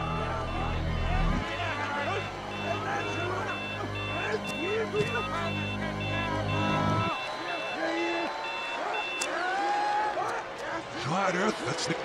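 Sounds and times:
reversed watch alarm beeps: 0.0 - 9.3.

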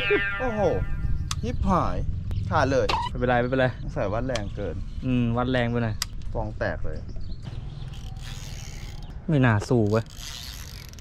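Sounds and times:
fishing reel cranking: 7.9 - 11.0.

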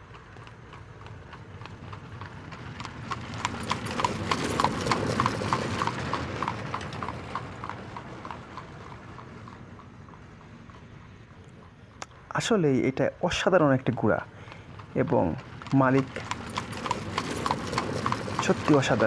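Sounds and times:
horse hooves cantering on sand: 0.0 - 11.8, 13.4 - 19.0.

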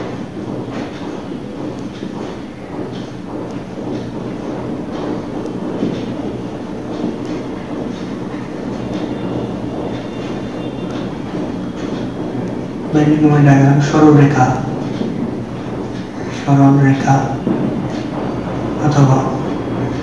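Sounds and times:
marker writing on whiteboard: 0.0 - 20.0.

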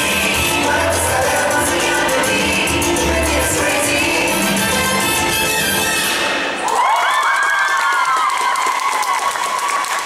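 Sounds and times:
salsa music: 0.0 - 6.6
audience applauding and cheering: 6.5 - 10.0
high-pitched cheers: 6.6 - 10.0.

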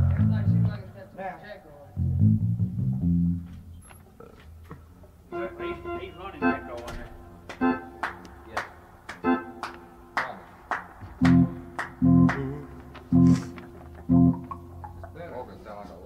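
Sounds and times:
heavy low chords: 0.0 - 0.9, 1.9 - 3.5, 11.0 - 15.2
sharp percussive hits: 9.1 - 15.2
band playing music: 11.2 - 14.6
people laughing: 12.3 - 14.1.

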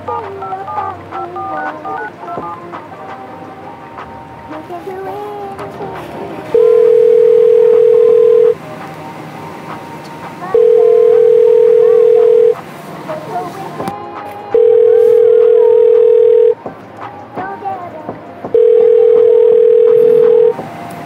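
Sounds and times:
telephone ringback tone: 6.5 - 8.6, 10.4 - 12.6, 14.5 - 16.6, 18.5 - 20.6.

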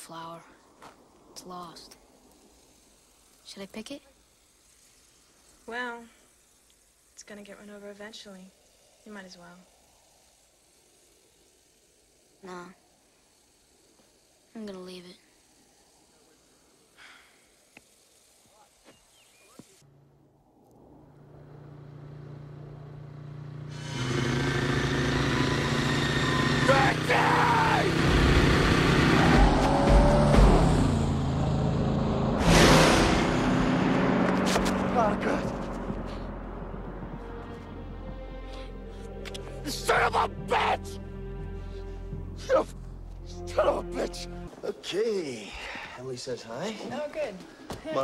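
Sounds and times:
faint steady hiss: 0.0 - 25.7, 37.2 - 48.0
car engine approaching: 19.8 - 44.5
car rushing past: 20.8 - 37.4.

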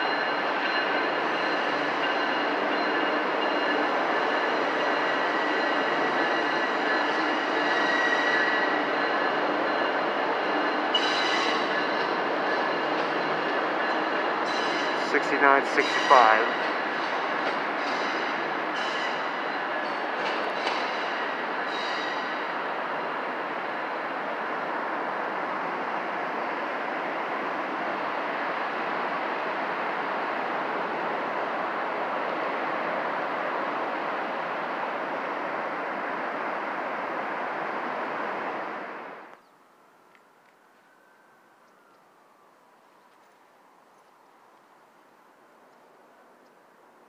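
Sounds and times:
high-pitched wheel squeals: 0.0 - 15.0, 20.6 - 22.4
train rolling past: 0.0 - 39.4.

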